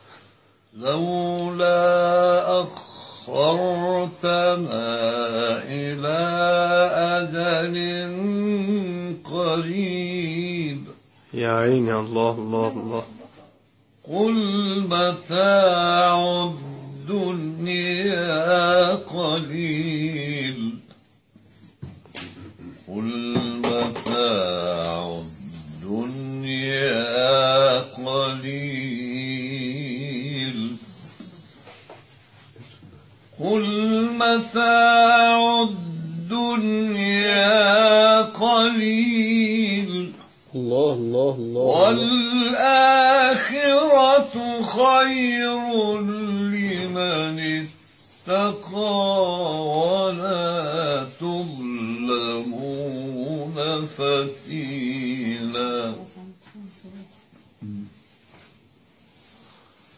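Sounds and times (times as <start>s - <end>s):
man reciting melodically: 0.7s - 20.9s, 22.4s - 31.5s, 33.4s - 56.2s.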